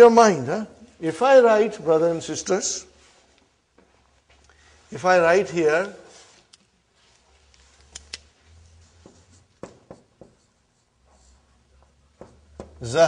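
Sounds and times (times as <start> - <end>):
marker pen on whiteboard: 5.7 - 13.0.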